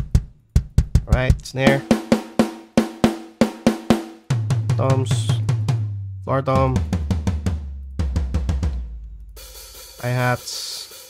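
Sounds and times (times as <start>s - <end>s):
floor tom drum hits: 0.0s - 10.4s.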